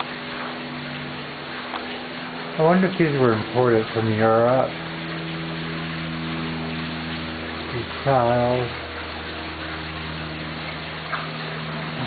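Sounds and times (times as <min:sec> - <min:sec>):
fountain water splashing: 0:00.0 - 0:12.0
low steady hum: 0:00.0 - 0:12.0.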